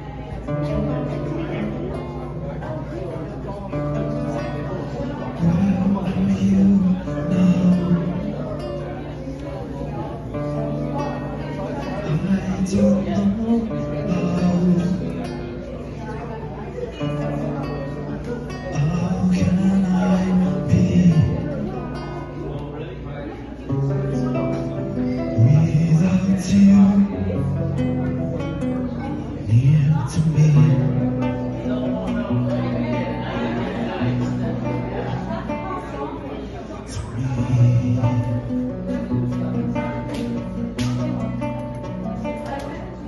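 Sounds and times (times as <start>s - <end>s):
acoustic guitar strumming: 0.0s - 43.0s.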